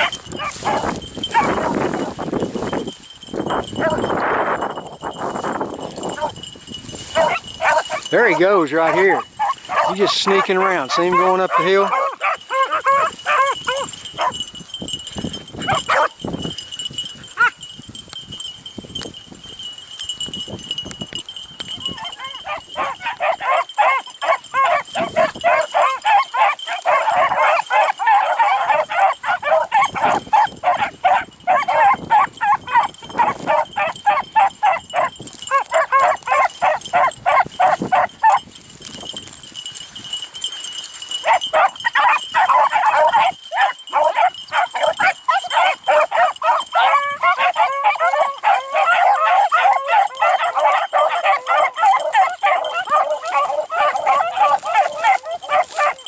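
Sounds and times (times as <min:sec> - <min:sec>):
hounds baying: 0:00.0 - 0:17.8, 0:21.2 - 0:56.0.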